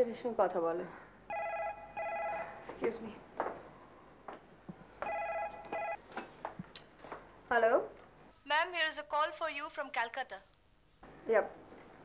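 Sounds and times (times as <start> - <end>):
telephone ringing: 1.3 - 2.7, 5.0 - 6.0.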